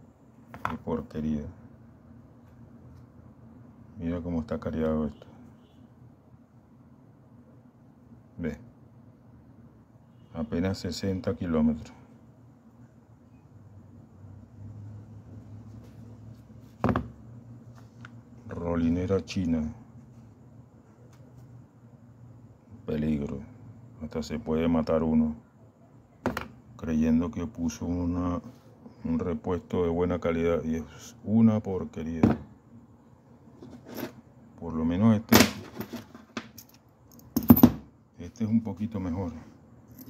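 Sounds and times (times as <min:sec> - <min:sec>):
metal knock on rubber mat: 0:16.8 - 0:17.2.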